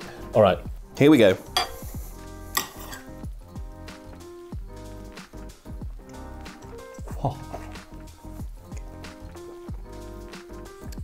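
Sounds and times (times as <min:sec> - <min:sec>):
background music: 0:00.0 - 0:11.0
cutlery clinking on plate: 0:01.6 - 0:01.8, 0:02.6 - 0:03.1.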